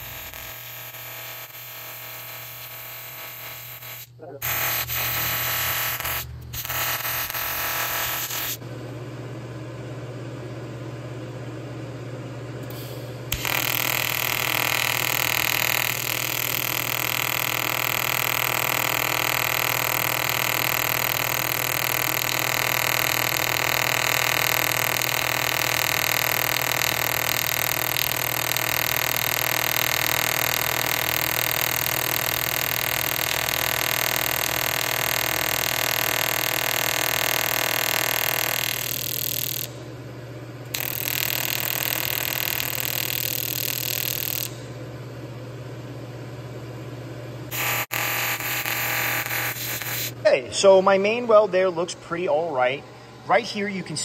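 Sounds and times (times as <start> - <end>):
welding arc buzzing: 0.0 - 8.6, 12.6 - 39.9, 40.6 - 44.8, 47.5 - 53.4.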